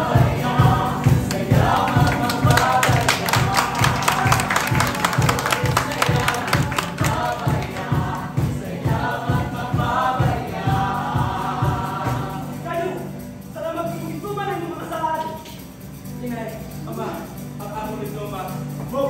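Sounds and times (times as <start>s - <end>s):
group of voices singing: 0.0s - 13.2s
bright percussion strokes: 0.0s - 19.0s
steady drum beat: 0.0s - 19.0s.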